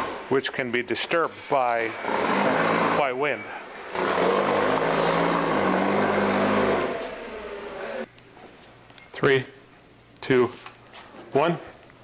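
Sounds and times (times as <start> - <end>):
motor-driven machine running: 1.8 - 3.2.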